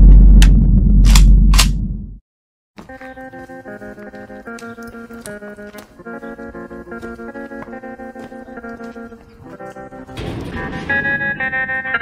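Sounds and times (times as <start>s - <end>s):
deep loud rumble: 0.0s - 2.2s.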